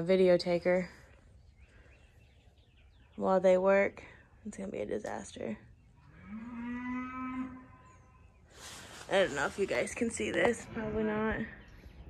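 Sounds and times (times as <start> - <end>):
faint outdoor ambience: 0.0 - 12.0.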